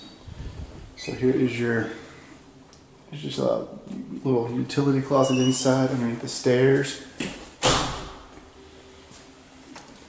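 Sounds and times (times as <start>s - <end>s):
door shutting thud: 7.3s - 8.3s.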